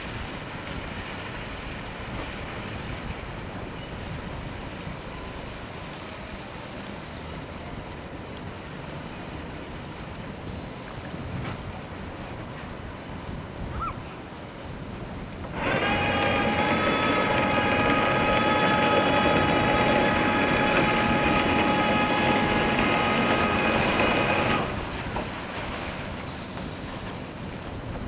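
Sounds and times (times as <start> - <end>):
boat horn blast: 15.6 - 25.0.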